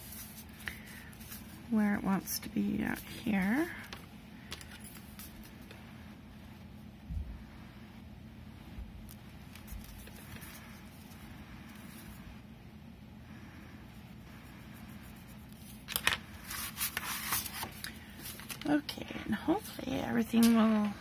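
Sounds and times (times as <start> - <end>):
paper card rustling and scraping: 0.0 - 1.6, 2.9 - 5.8, 9.1 - 12.2, 15.1 - 18.8
low room hum: 0.0 - 21.0
person speaking: 18.6 - 21.0.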